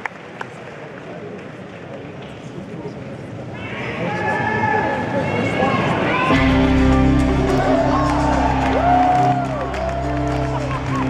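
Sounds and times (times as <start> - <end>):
audience chatter: 0.0 - 11.0
scattered claps: 7.2 - 11.0.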